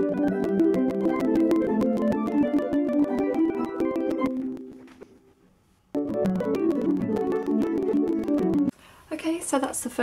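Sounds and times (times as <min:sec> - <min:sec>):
harp plucked notes: 0:00.0 - 0:05.1, 0:06.0 - 0:08.7.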